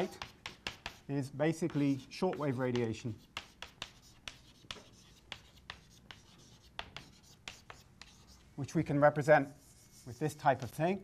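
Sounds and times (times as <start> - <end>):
chalk tapping and scratching: 0.0 - 8.6, 9.2 - 11.0.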